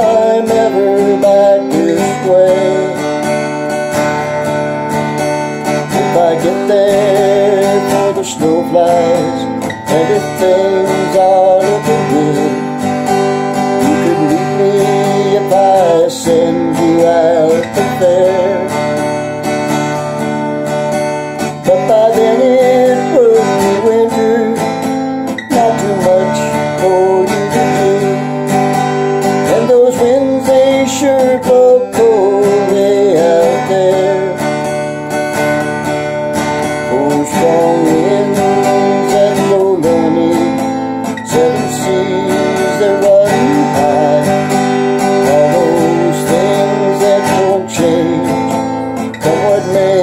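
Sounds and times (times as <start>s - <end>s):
acoustic guitar strumming: 0.0s - 50.0s
man singing folk melody: 0.0s - 50.0s.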